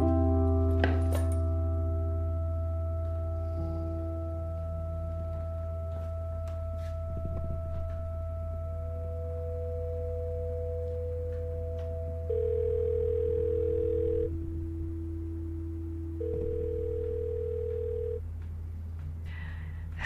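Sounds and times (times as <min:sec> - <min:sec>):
low steady drone: 0:00.0 - 0:20.0
telephone ringing: 0:12.2 - 0:14.4, 0:16.2 - 0:18.2.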